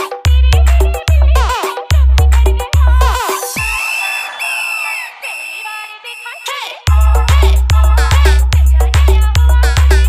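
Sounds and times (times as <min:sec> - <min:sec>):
falling synth sweeps: 0:03.6 - 0:06.5.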